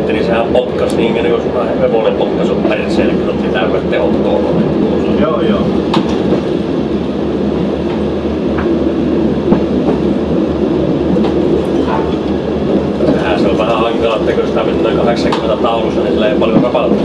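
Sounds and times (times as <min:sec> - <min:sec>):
steady diesel engine: 0:00.0 - 0:17.0
wheel-on-rail noise: 0:00.0 - 0:17.0
sharp clicks from rails: 0:05.7 - 0:06.6, 0:07.8 - 0:08.8, 0:09.4 - 0:10.1, 0:11.0 - 0:17.0.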